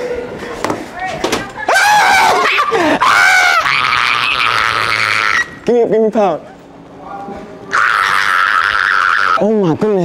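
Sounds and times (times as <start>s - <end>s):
person screaming: 1.7s - 5.6s, 7.7s - 9.5s.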